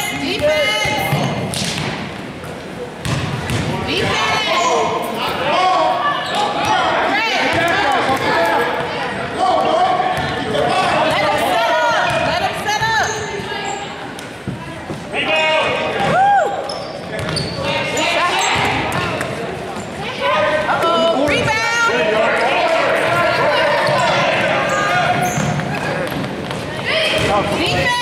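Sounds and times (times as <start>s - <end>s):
voices of players and spectators: 0.0s - 28.0s
sneaker squeaks: 6.1s - 6.9s, 12.8s - 15.1s, 16.6s - 20.1s, 23.7s - 28.0s.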